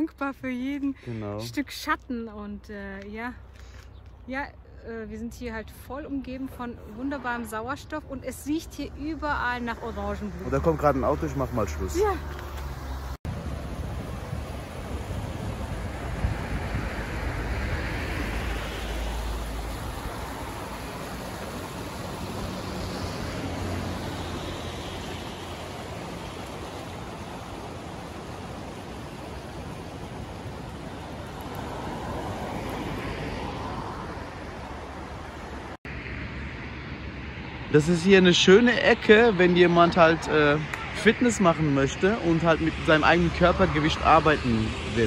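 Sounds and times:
sea surf washing onto beach: 13.3 - 35.8
wind buffeting microphone: 13.3 - 35.8.

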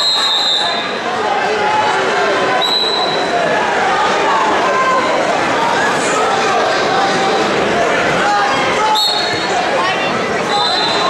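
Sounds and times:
referee whistle blast: 0.0 - 0.9, 2.6 - 3.2, 8.9 - 9.4
spectators chattering: 0.0 - 11.0.

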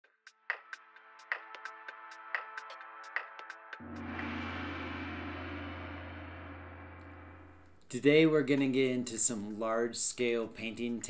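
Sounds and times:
deep sustained low tone: 3.8 - 7.8.

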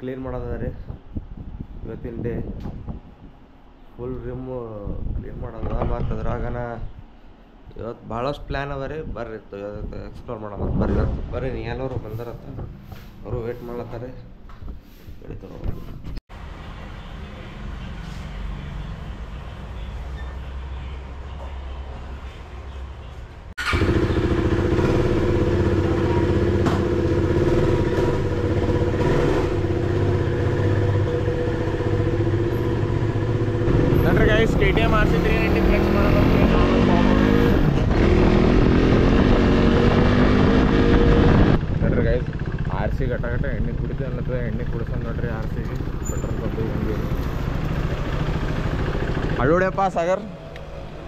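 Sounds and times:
motorcycle engine: 23.6 - 51.0.

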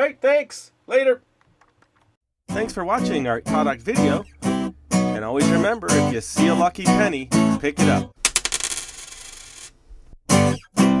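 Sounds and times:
coin clinking and ringing: 8.2 - 9.8.

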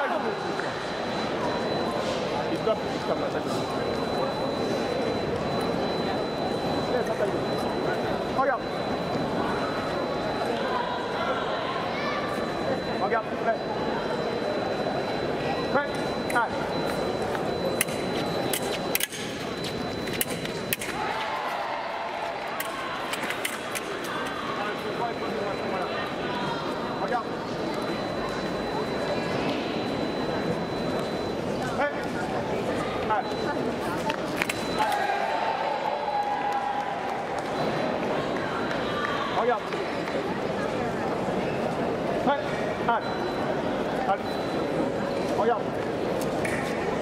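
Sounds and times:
murmur of voices in a hall: 0.0 - 47.0.

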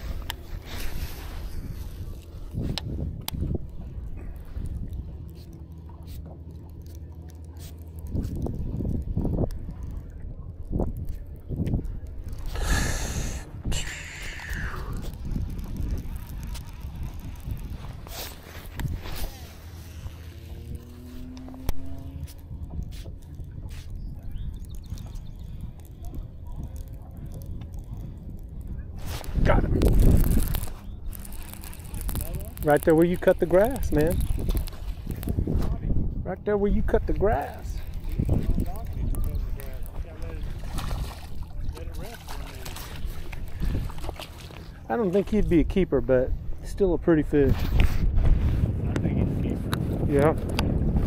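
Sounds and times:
steady low rumble: 0.0 - 51.0
reel and rod clicks: 0.1 - 12.8, 13.8 - 35.5, 37.0 - 45.6
reel spool whirring: 12.0 - 28.6, 29.8 - 35.4.

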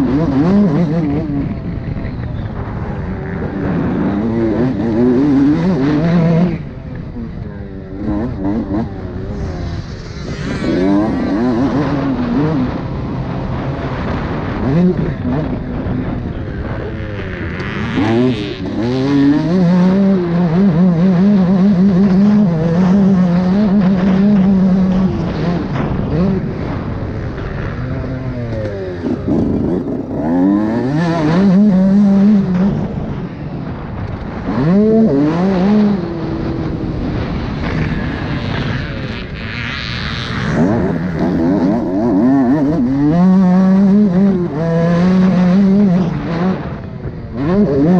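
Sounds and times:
dirt bike engine revving: 0.0 - 47.9
wind rushing: 8.3 - 17.4.

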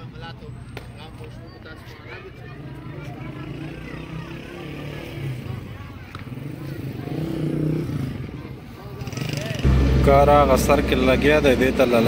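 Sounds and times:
people chattering: 0.0 - 12.0
low engine hum: 9.6 - 12.0.

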